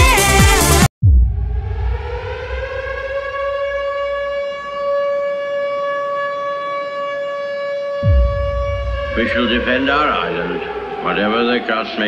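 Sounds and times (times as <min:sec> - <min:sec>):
low boom: 0:01.0 - 0:04.8, 0:08.0 - 0:11.5
air-raid siren wailing: 0:01.4 - 0:12.0.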